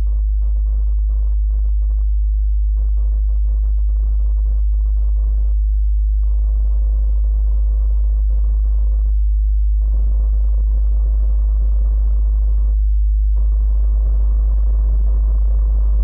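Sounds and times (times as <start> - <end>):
low sine tone: 0.0 - 16.0.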